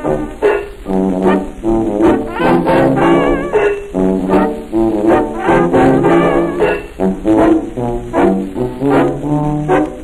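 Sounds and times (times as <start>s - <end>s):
jazz orchestra playing blues: 0.0s - 10.0s.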